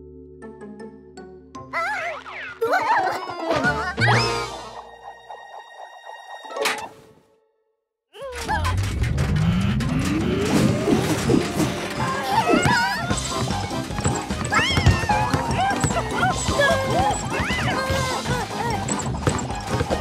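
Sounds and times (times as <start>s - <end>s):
cartoon background music: 0.0s - 7.4s, 8.2s - 20.0s
squeaky character vocalizations: 1.7s - 4.6s, 8.2s - 13.2s, 14.5s - 19.1s.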